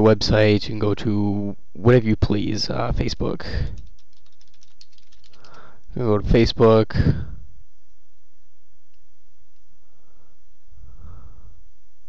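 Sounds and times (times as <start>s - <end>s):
computer keyboard clicking: 3.6s - 5.8s.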